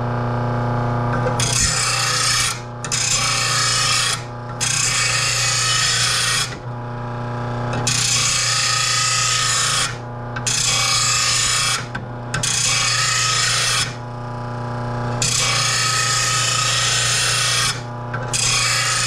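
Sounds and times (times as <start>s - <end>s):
grinder motor humming: 0.0s - 19.0s
harsh grinding rasp: 1.2s - 6.6s, 7.7s - 14.0s, 15.2s - 19.0s.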